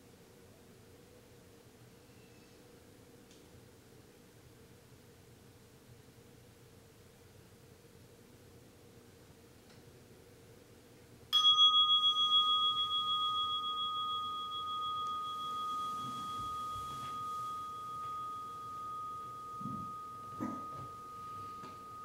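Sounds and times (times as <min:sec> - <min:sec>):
meditation bell ringing: 0:11.4 - 0:22.0
soft rustling: 0:12.3 - 0:22.0.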